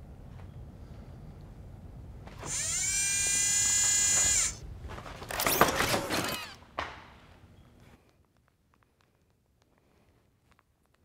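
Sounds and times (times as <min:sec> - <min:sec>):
robot motor whine: 0:02.4 - 0:04.6, 0:06.0 - 0:06.6.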